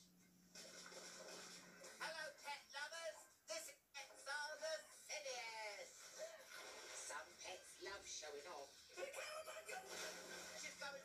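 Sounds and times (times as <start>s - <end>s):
vocals over music from television: 0.0s - 11.0s.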